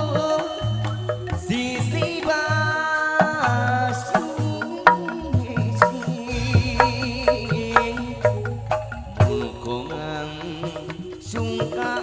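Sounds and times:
bamboo percussion ensemble: 0.0 - 12.0
man singing a wavering note: 0.0 - 12.0
sharp drum stroke: 5.8 - 11.2.

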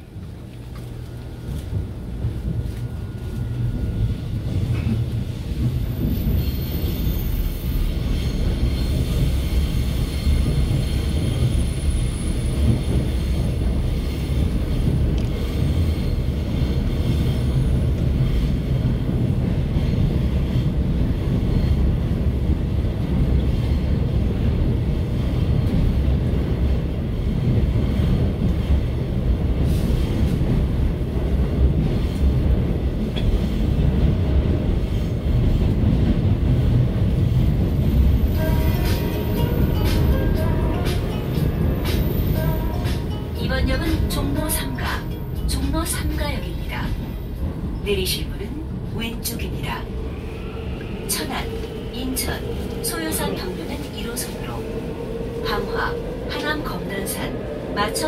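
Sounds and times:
subway wheels rumbling on track: 0.0 - 58.0.

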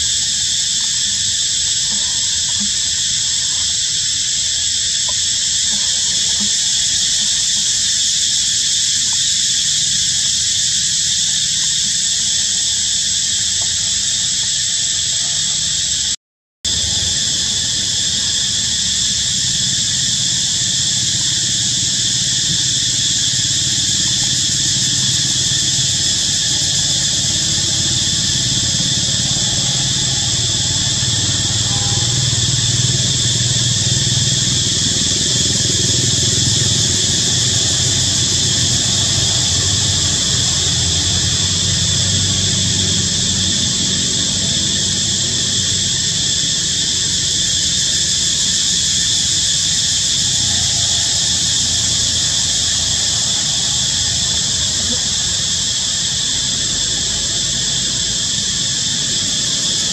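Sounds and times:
insect chorus droning: 0.0 - 59.9
vehicle engine rumble: 16.7 - 47.4, 49.9 - 59.9.

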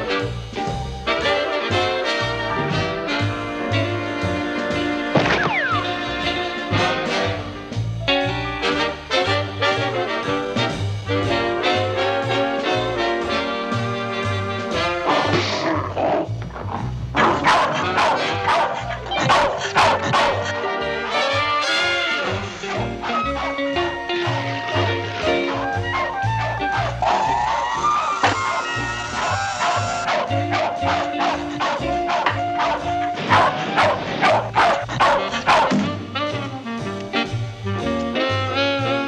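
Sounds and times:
background music: 0.0 - 39.0
cartoon dog barking: 14.8 - 35.9.

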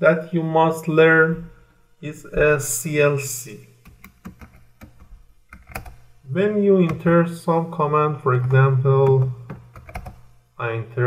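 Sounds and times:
computer keyboard keys clicking: 3.9 - 6.0, 8.4 - 10.2.

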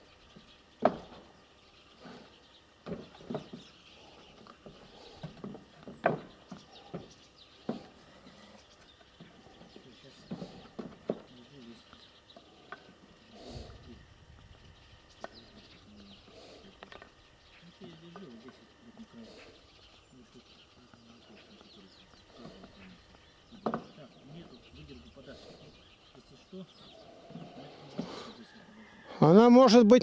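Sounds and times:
knocks on corrugated roofing: 4.6 - 7.9.

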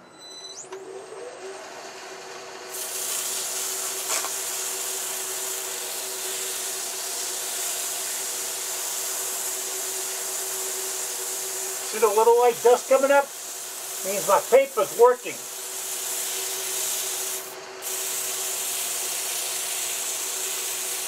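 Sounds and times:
sandpaper hissing on wood: 2.7 - 21.0
wood lathe humming: 3.5 - 21.0.

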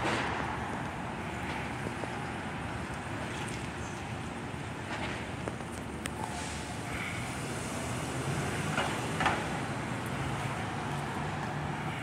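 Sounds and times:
road noise: 0.0 - 12.0
vehicle engines humming: 0.0 - 12.0.

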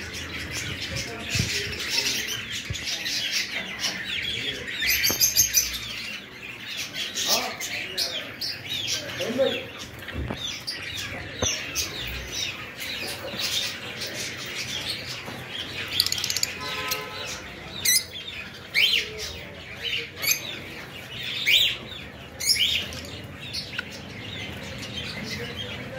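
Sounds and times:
parrots chirping and calling: 0.0 - 25.9.

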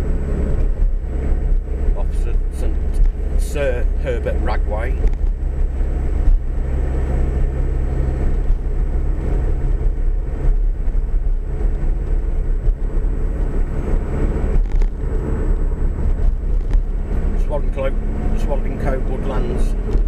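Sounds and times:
vehicle engine and tyre noise: 0.0 - 20.0.

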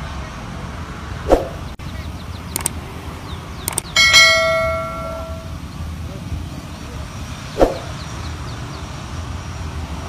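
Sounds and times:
notification bell ding: 4.0 - 5.6.

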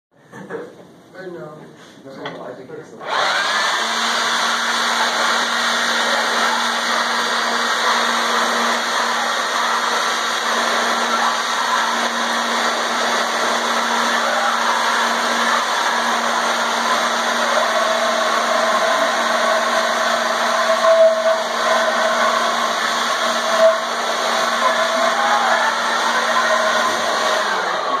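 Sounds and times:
leaf blower running: 3.0 - 28.0.

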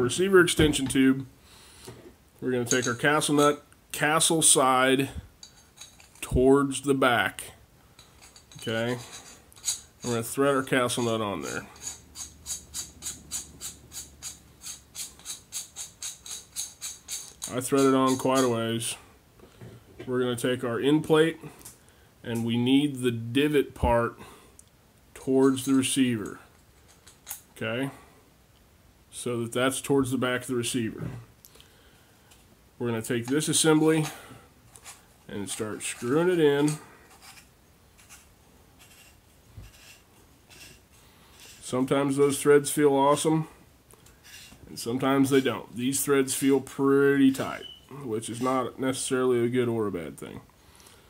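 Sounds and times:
metal tube rubbing and scraping: 2.6 - 3.6, 8.0 - 18.7, 33.3 - 43.3, 44.1 - 49.0
nut spinning metallic clicking: 10.9 - 18.5.

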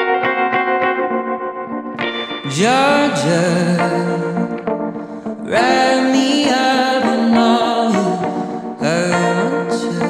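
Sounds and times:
guitar chord ringing: 0.0 - 10.0
guitar picking: 0.0 - 10.0.

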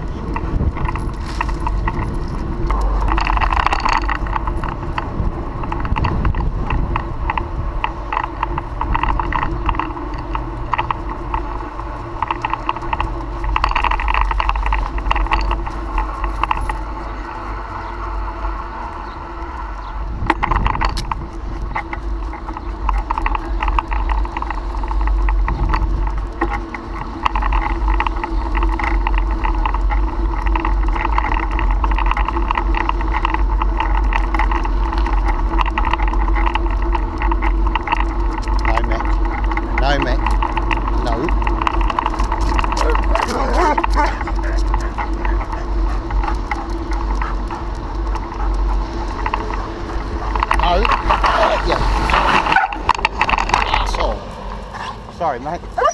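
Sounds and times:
bicycle rattles and clicks: 0.0 - 55.9
bicycle tyre noise: 0.0 - 55.9
wind rumble on microphone: 0.0 - 55.9.

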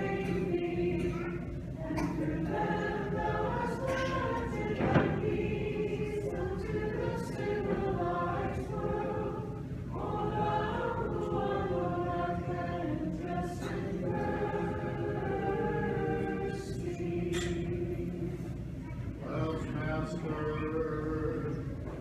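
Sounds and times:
church choir singing a hymn: 0.0 - 21.7.

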